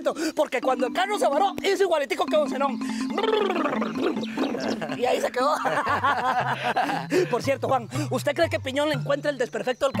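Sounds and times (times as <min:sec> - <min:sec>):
man making sputtering mouth noise: 0:02.9 - 0:04.8.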